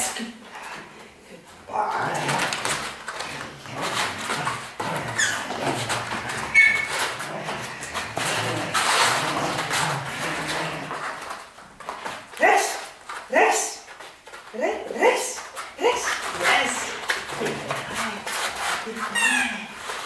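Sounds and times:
dogs growling and scuffling: 0.4s - 20.0s
dog high squeals: 5.2s - 5.6s, 6.4s - 7.1s, 19.1s - 19.7s.

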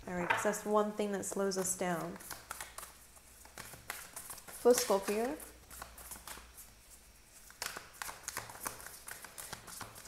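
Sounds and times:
cards being shuffled: 1.3s - 6.6s, 7.4s - 10.0s.

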